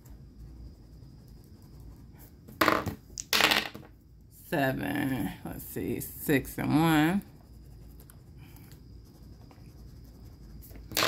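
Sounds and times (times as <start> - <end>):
dice clattering on a tabletop: 2.6 - 3.9.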